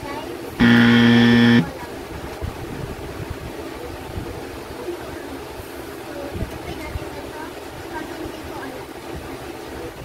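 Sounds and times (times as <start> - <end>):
low background noise: 0.0 - 10.0
buzzing horn tone: 0.6 - 1.7.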